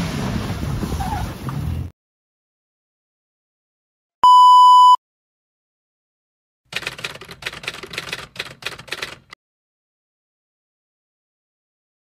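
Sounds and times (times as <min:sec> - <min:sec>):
steady test-tone beep: 0:04.2 - 0:05.0
typewriter keystrokes clacking: 0:06.7 - 0:09.4.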